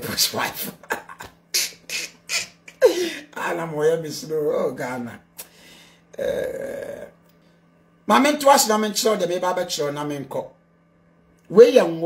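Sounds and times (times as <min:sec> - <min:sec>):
man's rough drawn-out vocal sound: 0:06.1 - 0:07.2.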